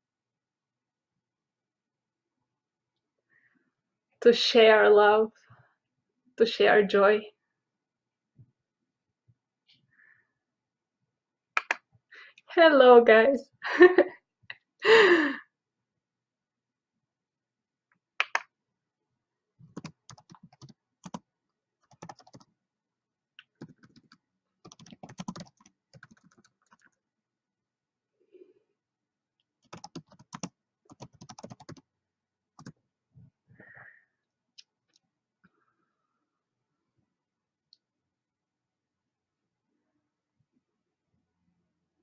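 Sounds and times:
typing on computer keyboard: 19.7 - 22.5, 23.5 - 27.0, 29.6 - 31.9, 32.6 - 32.8.

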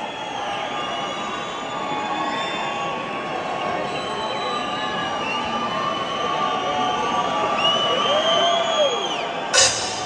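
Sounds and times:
crowd cheering and shouting: 0.0 - 10.0.

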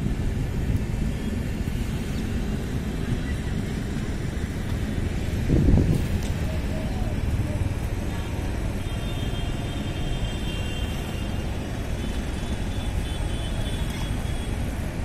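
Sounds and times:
train rumbling on track: 0.0 - 15.0.

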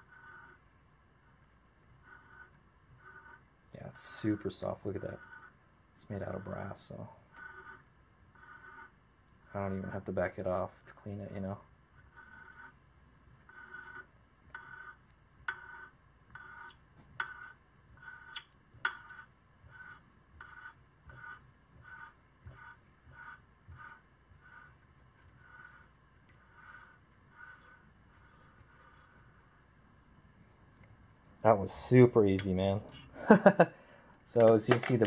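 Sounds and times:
sharp high squeaks: 14.6 - 24.8.

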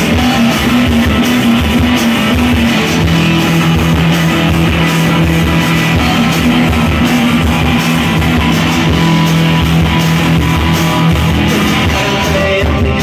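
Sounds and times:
held bass note: 0.0 - 12.3
driving drum beat: 0.0 - 13.0
electric guitars: 0.0 - 13.0.

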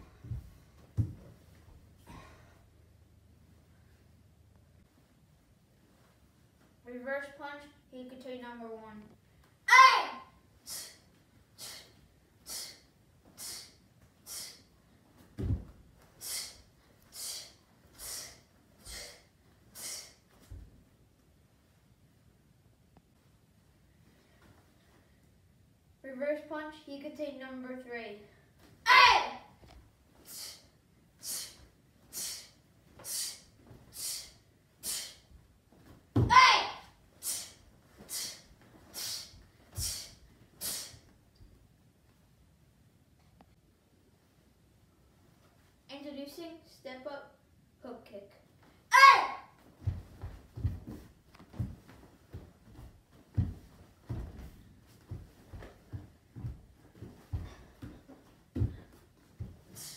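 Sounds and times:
child's sharp exhalations: 10.6 - 11.0, 11.6 - 14.7, 16.2 - 20.2, 30.2 - 35.2, 37.2 - 41.0, 59.7 - 59.9.

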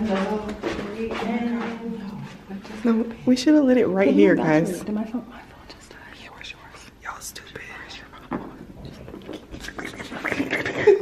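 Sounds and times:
whispering voices: 0.0 - 10.6.

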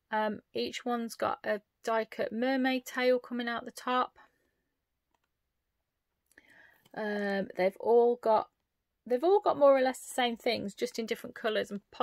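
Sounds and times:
faint breath: 6.3 - 7.0.

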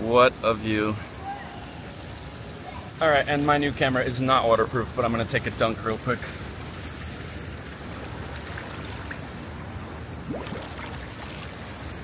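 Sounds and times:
pool water sloshing: 0.1 - 12.0.

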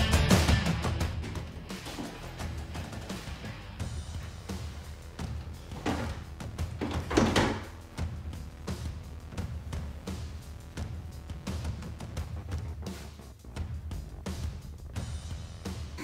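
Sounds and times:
music with steady low beat: 0.0 - 16.0
dull thuds: 5.4 - 7.8.

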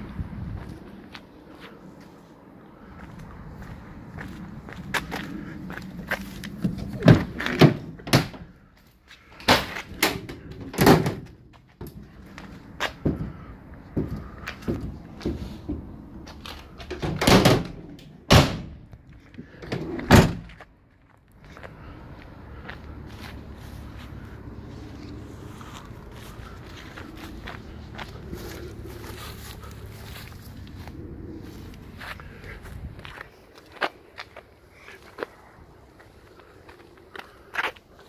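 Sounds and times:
footsteps on tarmac: 0.0 - 16.9, 18.8 - 38.0
van doors closing: 6.6 - 8.6, 9.4 - 12.1, 12.7 - 18.9, 19.5 - 20.6
low rumble: 22.2 - 33.4.

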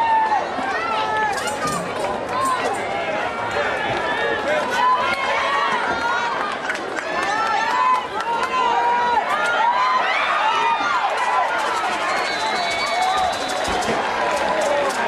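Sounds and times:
crowd yelling: 0.0 - 15.0.

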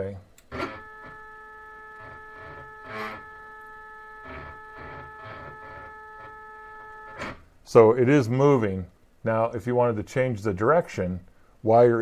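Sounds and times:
stepper motors whining: 0.4 - 7.4.

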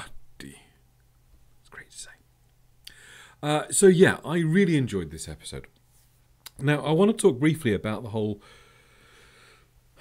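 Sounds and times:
mouth click: 6.4 - 6.6.

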